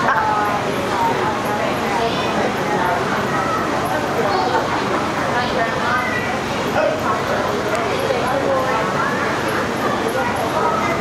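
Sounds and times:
children's voices babbling: 2.0s - 7.0s, 8.2s - 11.0s.

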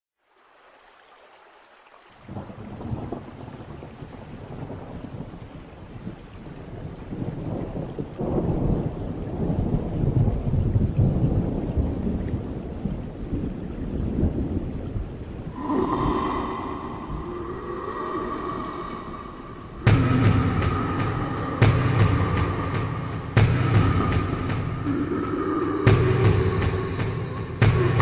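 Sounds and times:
steady rain: 0.2s - 28.0s
rolling thunder: 2.3s - 5.5s, 6.8s - 28.0s.

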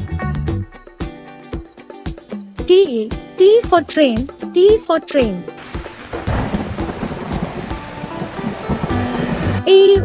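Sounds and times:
soft background music: 0.5s - 10.0s
rushing noise with low rumble: 5.8s - 9.7s.

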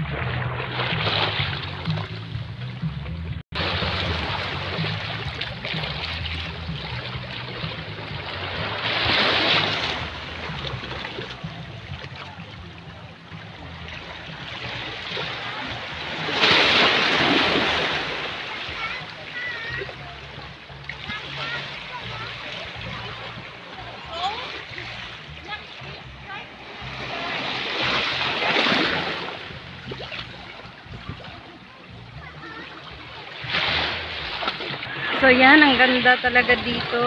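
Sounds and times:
small waves washing onto beach: 3.6s - 37.0s.

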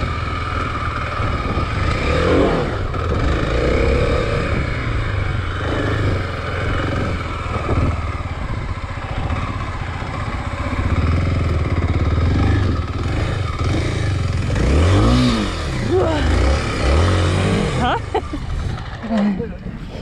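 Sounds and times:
motorcycle engine revving: 0.0s - 19.7s
motorcycle engine running: 0.0s - 20.0s.

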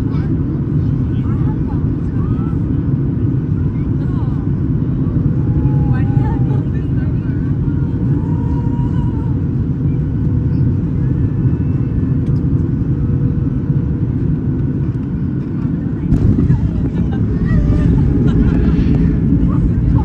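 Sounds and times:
airliner cabin engine rumble: 0.0s - 20.0s.

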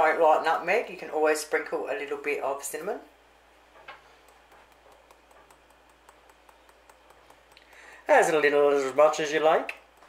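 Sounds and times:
spice shaker ticks: 4.2s - 8.1s, 9.7s - 10.0s.

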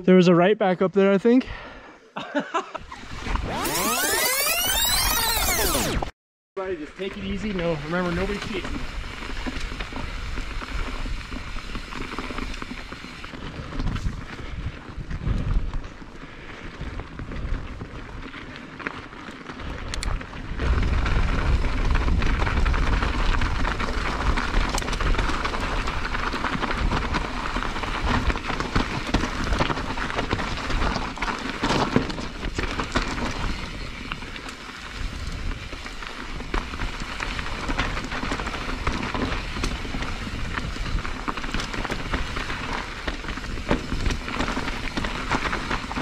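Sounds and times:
bike rattling: 2.8s - 46.0s
tyres crunching on gravel: 7.1s - 15.0s, 16.8s - 46.0s
wind buffeting microphone: 13.3s - 18.4s, 19.6s - 31.0s.

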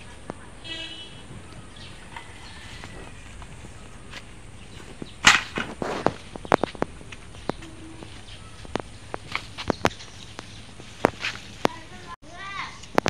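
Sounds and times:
dry leaves rustling and crackling: 1.4s - 13.0s.

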